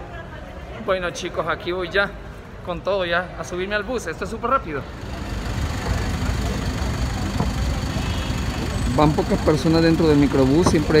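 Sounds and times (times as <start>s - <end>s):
faint voices of people: 4.7s - 11.0s
van engine idling: 4.9s - 11.0s.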